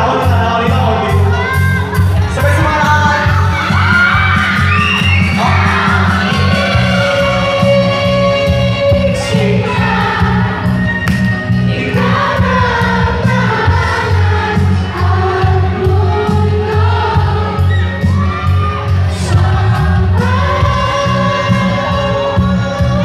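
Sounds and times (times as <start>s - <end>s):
backing track with bass beat: 0.0s - 23.0s
man singing into microphone: 5.2s - 10.4s, 11.7s - 17.7s, 19.0s - 23.0s.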